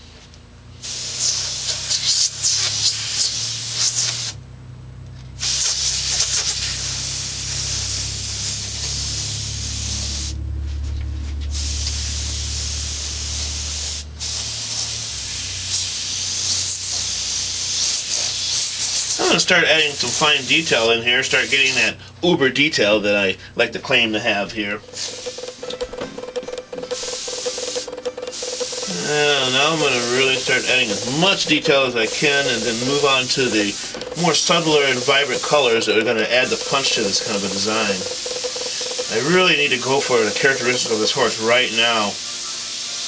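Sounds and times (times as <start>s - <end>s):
steady low hum: 0.0s - 42.0s
airbrush hissing: 0.8s - 4.4s, 5.4s - 10.4s, 11.4s - 22.0s, 24.8s - 43.0s.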